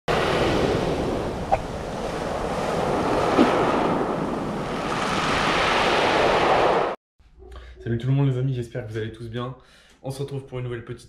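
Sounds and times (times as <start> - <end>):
surf washing over pebbles: 0.1 - 6.9.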